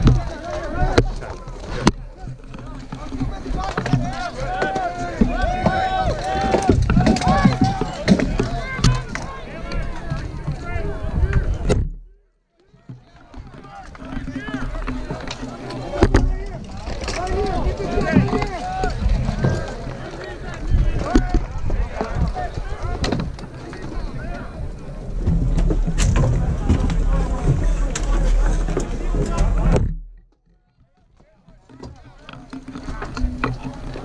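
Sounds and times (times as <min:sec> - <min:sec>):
sharp clacks and knocks: 0:00.0 - 0:10.6, 0:25.2 - 0:34.0
distant voices shouting: 0:00.0 - 0:11.7, 0:12.6 - 0:25.3
wind rumbling on microphone: 0:00.0 - 0:12.0, 0:13.4 - 0:30.2.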